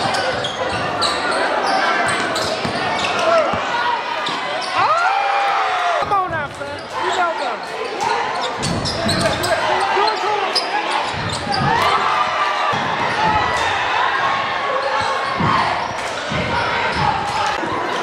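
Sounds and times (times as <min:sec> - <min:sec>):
spectators shouting and chatter: 0:00.0 - 0:18.0.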